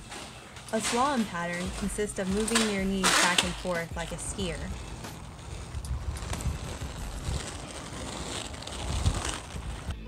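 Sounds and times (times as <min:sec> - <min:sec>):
roller-skate wheels on asphalt: 0:00.0 - 0:10.0
wind buffeting microphone: 0:04.2 - 0:09.9.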